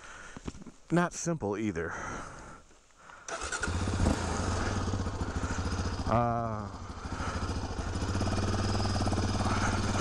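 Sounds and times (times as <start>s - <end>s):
engine starter turning over: 3.3s - 5.2s
engine idling with rapid beat: 3.8s - 10.0s.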